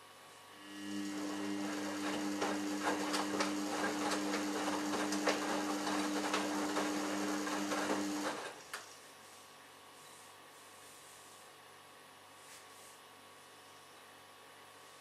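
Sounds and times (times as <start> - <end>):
washing machine motor humming: 0.6 - 8.6
laundry and water tumbling: 1.2 - 8.4.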